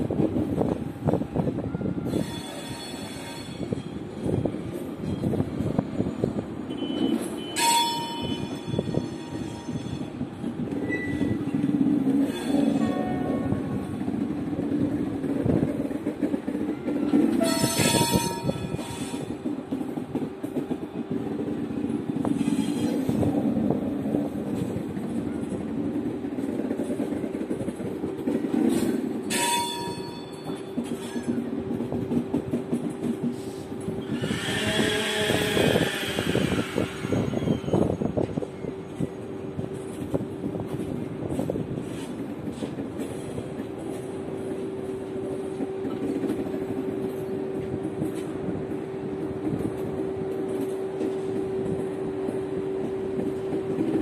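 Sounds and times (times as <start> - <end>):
low train rumble: 0.0 - 54.0.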